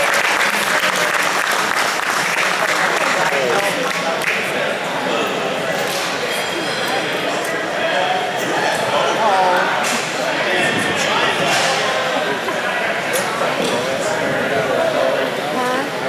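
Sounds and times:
people talking in echoing hall: 0:00.0 - 0:16.0.

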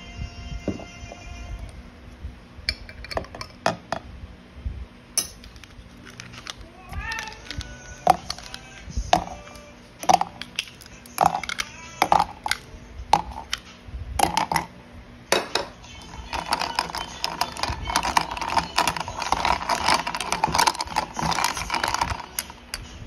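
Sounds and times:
ice cubes clinking in a bottle: 0:05.5 - 0:12.6, 0:13.2 - 0:13.6, 0:14.2 - 0:14.7, 0:15.9 - 0:22.8.

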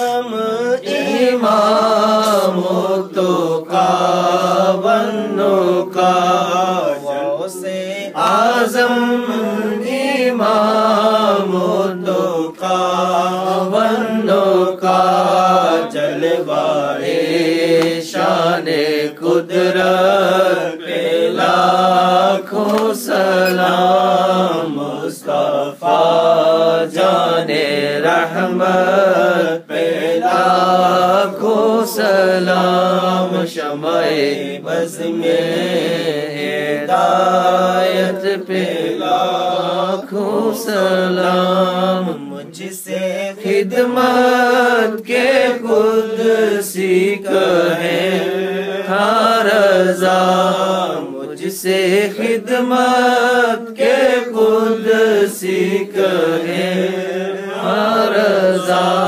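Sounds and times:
man singing unaccompanied: 0:00.0 - 0:59.0.

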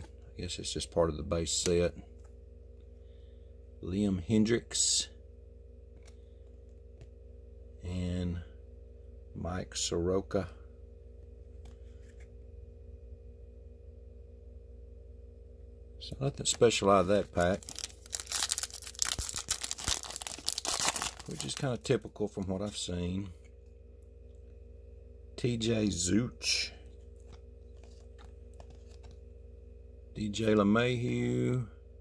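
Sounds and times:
steady low hum: 0:00.0 - 0:32.0
foil wrapper tearing and crinkling: 0:16.5 - 0:21.9.

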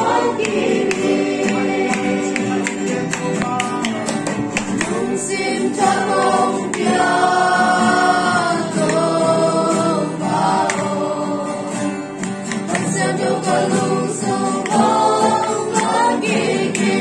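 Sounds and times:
group singing worship song: 0:00.0 - 0:17.0
strummed acoustic guitar: 0:00.0 - 0:17.0.

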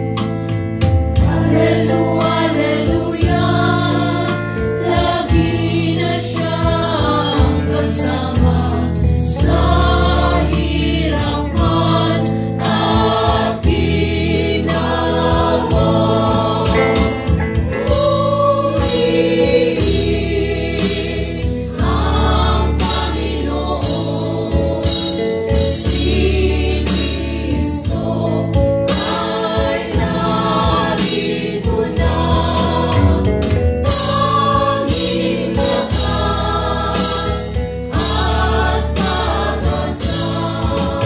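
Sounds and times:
bass guitar: 0:00.0 - 0:41.0
drums with steady beat: 0:00.0 - 0:41.0
people singing: 0:01.2 - 0:41.0
electric guitar: 0:15.3 - 0:19.9, 0:23.9 - 0:41.0.

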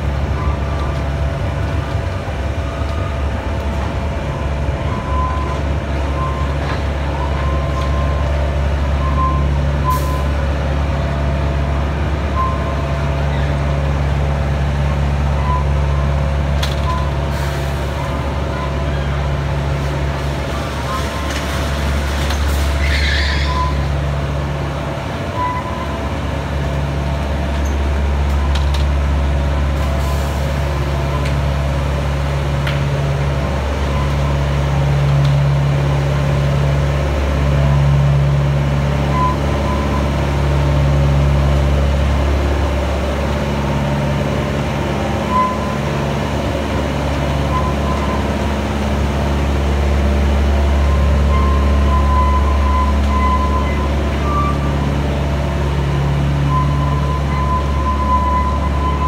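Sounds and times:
carriages rumbling on track: 0:00.0 - 0:59.0
miniature locomotive diesel engine: 0:00.0 - 0:59.0
thin high squeal: 0:22.8 - 0:23.8.

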